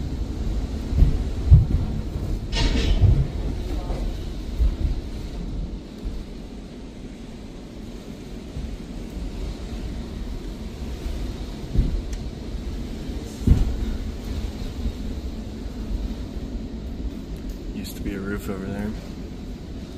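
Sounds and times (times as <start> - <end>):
strong wind buffeting: 0.0 - 19.9.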